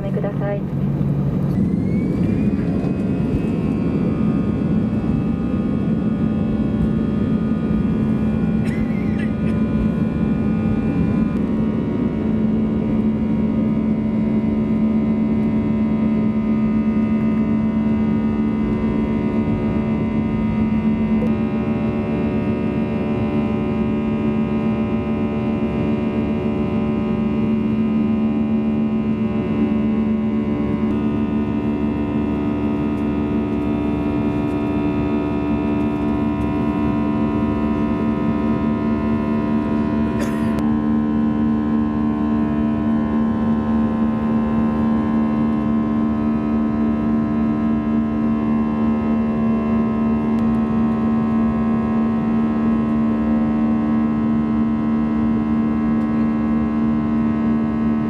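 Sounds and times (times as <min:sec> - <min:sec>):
jet engines droning: 0:00.0 - 0:58.0.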